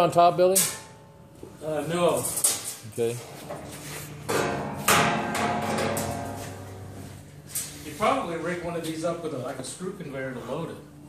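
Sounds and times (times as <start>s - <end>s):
sheet metal clanks and knocks: 2.4s - 7.0s
ringing metal tone: 4.2s - 7.4s.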